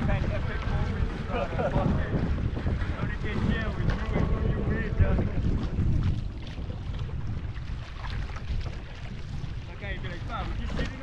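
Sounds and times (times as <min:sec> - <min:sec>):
water splashing along hull: 0:00.0 - 0:11.0
wind buffeting microphone: 0:00.0 - 0:11.0.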